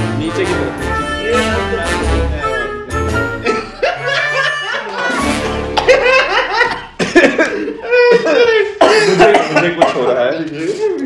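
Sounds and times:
men laughing: 3.3s - 11.0s.

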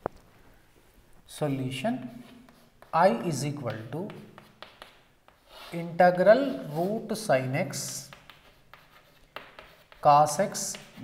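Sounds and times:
chalk scratching on chalkboard: 2.0s - 11.0s.

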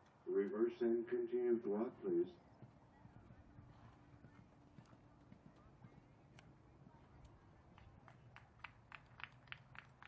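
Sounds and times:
pony hoofbeats cantering: 2.5s - 10.0s.

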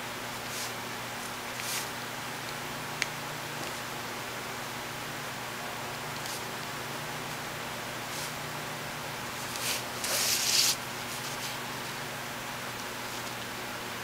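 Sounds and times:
paper rustling on table: 9.4s - 11.6s.

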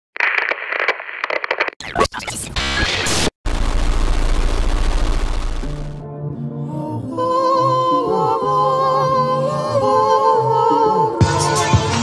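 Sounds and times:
radio static crackling: 0.2s - 6.0s
radio tuning sweep: 1.8s - 6.0s.

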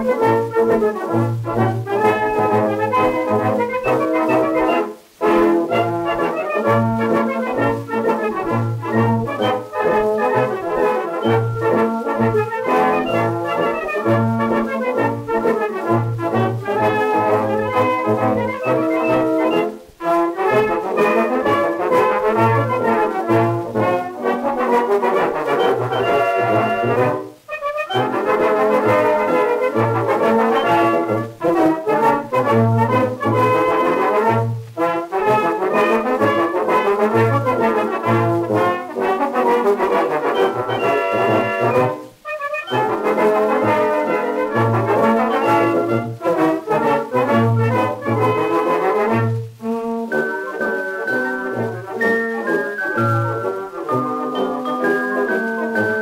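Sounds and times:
brass band playing a march: 0.0s - 56.0s
faint record hiss: 0.0s - 56.0s.

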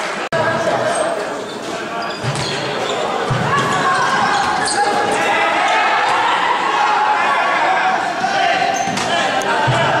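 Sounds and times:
echoing din of voices: 0.0s - 10.0s.

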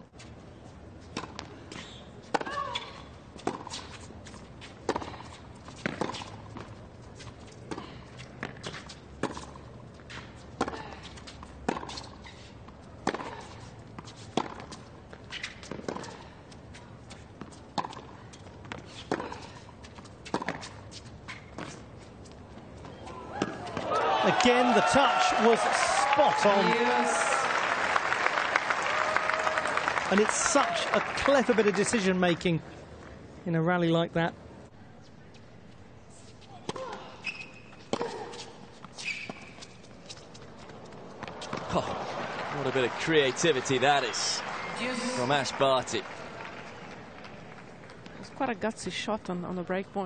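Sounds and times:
tennis ball hit by rackets: 4.8s - 6.7s, 13.0s - 16.2s, 40.9s - 42.1s.

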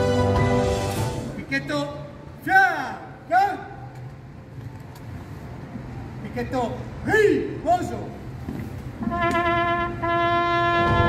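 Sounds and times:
solo trumpet military call: 9.0s - 11.0s.

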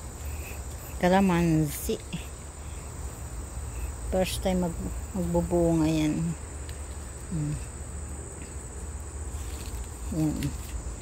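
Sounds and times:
high-pitched insect trill: 0.0s - 11.0s.

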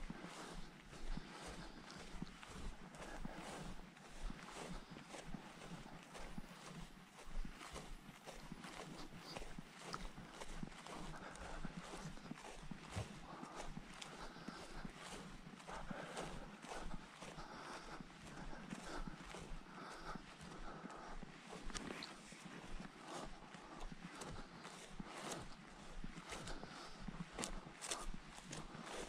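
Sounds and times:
footsteps through long grass: 0.0s - 29.0s.

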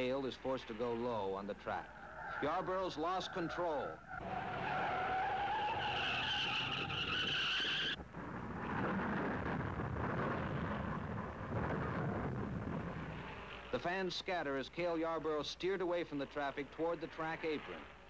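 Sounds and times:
tyres squealing in a skid: 1.7s - 8.0s
steady rough noise: 7.9s - 18.0s.

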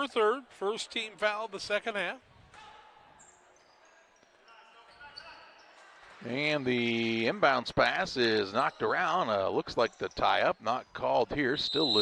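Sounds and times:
distant voices in large hall: 0.0s - 12.0s
faint high squeaks: 2.6s - 5.9s.

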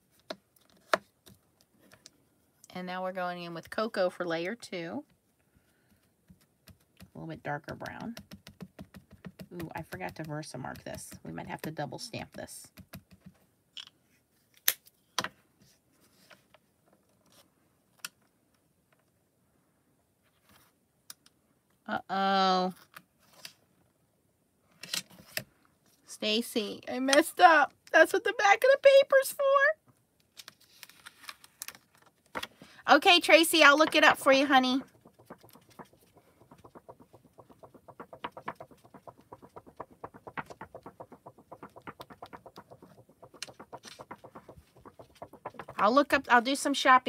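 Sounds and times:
rapid light tapping: 33.5s - 46.3s.

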